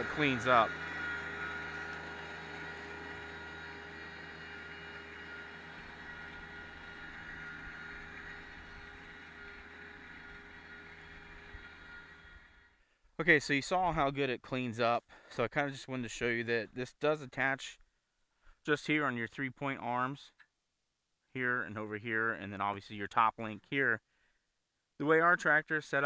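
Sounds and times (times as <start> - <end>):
tractor diesel engine running: 0.0 - 12.8.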